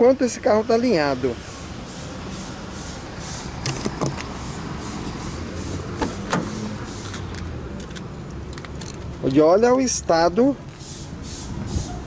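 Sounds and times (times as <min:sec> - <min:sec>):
street traffic: 0:00.0 - 0:12.0
car door handle and latch clicks: 0:03.6 - 0:04.3, 0:06.0 - 0:06.6.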